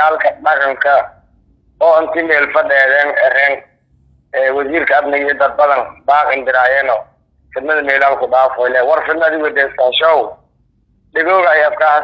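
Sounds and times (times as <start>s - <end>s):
man talking: 0.0s - 1.2s, 1.8s - 3.7s, 4.3s - 10.4s, 11.1s - 12.0s.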